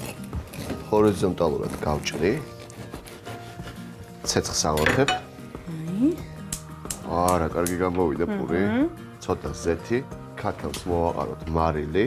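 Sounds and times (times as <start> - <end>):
knife clinking on cutting board: 4.7 - 5.3
background music with singing: 5.2 - 12.0.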